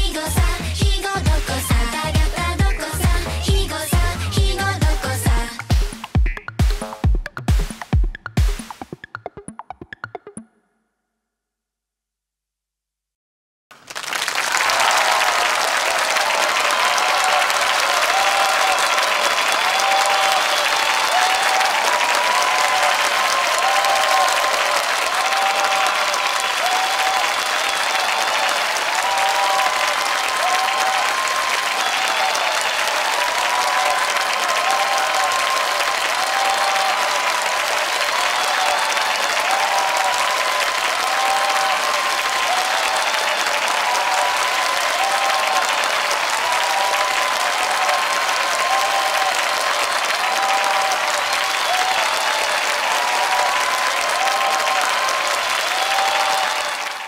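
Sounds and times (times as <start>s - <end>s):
audience applause: 13.7s - 57.0s.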